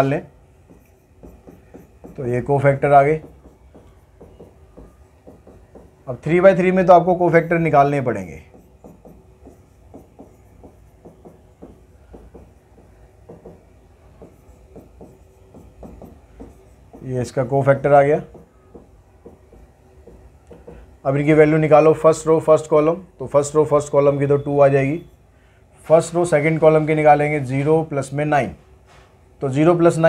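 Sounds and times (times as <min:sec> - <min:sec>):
pen tapping and scratching on screen: 0:00.6 - 0:21.0.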